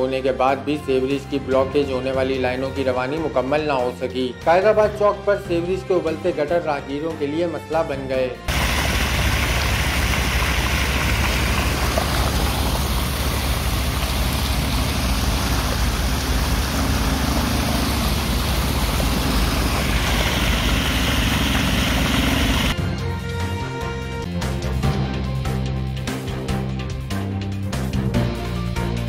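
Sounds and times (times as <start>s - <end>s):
deep rumble: 8.5s - 22.8s
water gushing from a pipe: 8.5s - 22.8s
news theme music: 15.8s - 29.0s.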